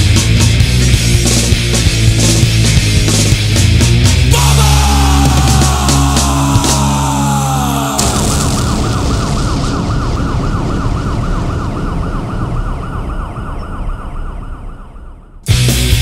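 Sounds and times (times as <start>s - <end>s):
punk rock band music: 0.0s - 8.9s, 15.5s - 16.0s
warbling siren tone: 5.2s - 15.4s.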